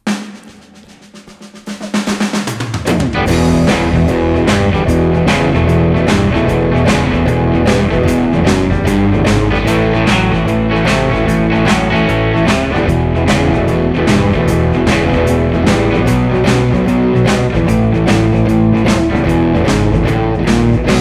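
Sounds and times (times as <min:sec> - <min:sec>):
backing track with drums: 0:00.0 - 0:21.0
drum fill: 0:00.0 - 0:21.0
electric guitar blues riff: 0:00.0 - 0:21.0.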